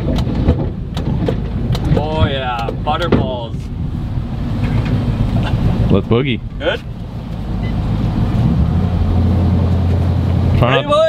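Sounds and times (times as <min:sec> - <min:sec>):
boat engine droning: 0:00.0 - 0:11.0
rushing wind and water: 0:00.0 - 0:11.0.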